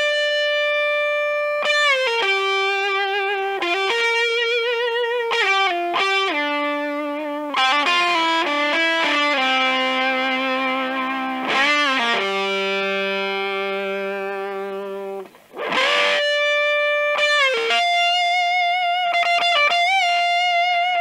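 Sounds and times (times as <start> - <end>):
fuzz electric guitar lead: 0.0 - 21.0.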